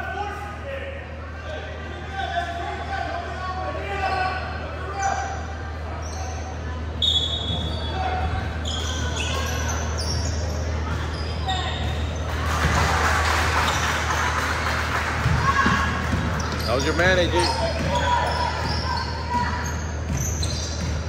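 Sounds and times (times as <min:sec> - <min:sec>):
voices echoing in hall: 0:00.0 - 0:20.8
sneakers squeaking: 0:04.0 - 0:12.9, 0:13.5 - 0:14.3, 0:15.2 - 0:21.0
basketball bouncing: 0:17.7 - 0:21.0.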